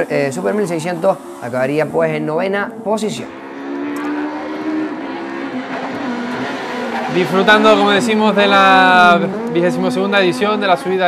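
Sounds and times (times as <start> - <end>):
rally car engine at high revs: 0.0 - 11.0.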